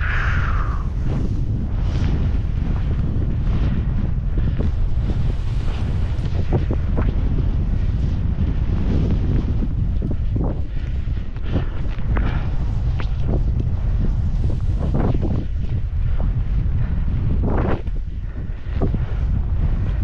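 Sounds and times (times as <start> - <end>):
wind buffeting microphone: 0.0 - 20.0
skis swishing through snow: 0.1 - 16.2.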